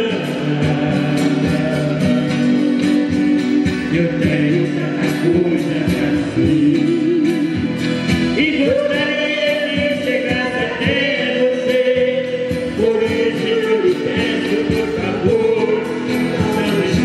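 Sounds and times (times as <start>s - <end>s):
strummed acoustic guitars: 0.0s - 17.0s.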